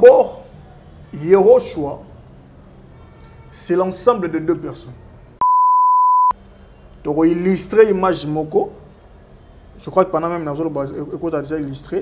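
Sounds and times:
electronic censor bleep: 0:05.4 - 0:06.4.

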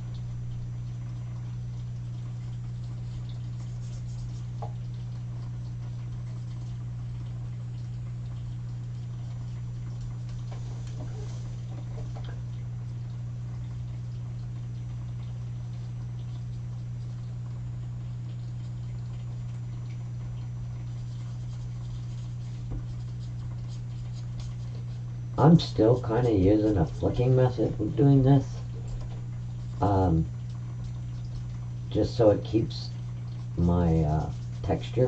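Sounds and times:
low steady hum: 0:00.0 - 0:35.0.

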